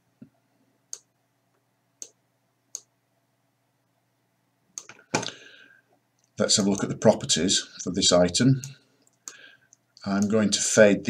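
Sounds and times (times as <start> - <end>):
computer mouse clicking: 2.0 - 2.9, 6.2 - 6.9.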